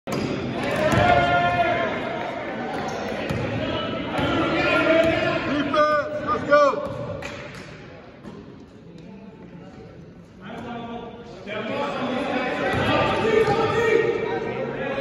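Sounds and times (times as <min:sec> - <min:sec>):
basketball bouncing: 0:03.3 - 0:03.5.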